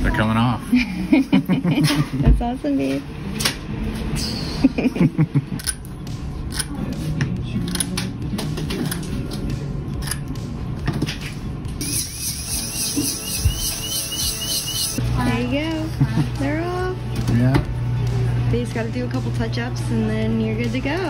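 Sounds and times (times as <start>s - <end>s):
background music: 4.2s - 21.0s.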